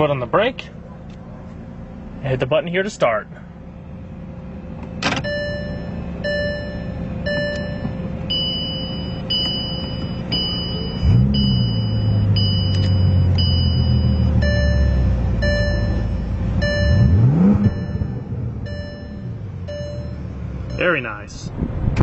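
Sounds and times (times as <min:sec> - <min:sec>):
car engine starting and idling: 0:00.0 - 0:22.0
repeating electronic chime: 0:05.3 - 0:21.0.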